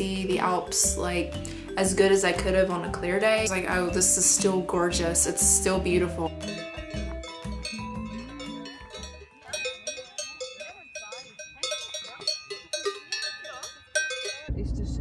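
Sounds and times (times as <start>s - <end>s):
bell-like background music: 0.0s - 14.5s
steady low rumble: 14.5s - 15.0s.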